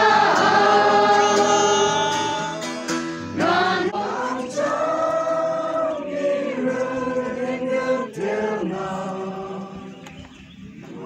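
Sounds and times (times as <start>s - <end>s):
group singing worship song: 0.0s - 11.0s.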